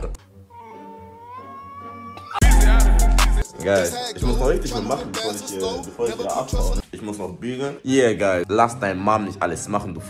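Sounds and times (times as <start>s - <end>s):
high-pitched meow-like cry: 0.5s - 2.4s.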